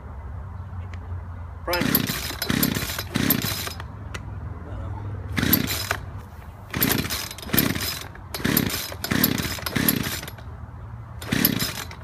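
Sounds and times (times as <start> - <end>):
chainsaw starter cord pulled: 1.7 - 3.9, 5.4 - 6.1, 6.7 - 10.4, 11.2 - 12.0.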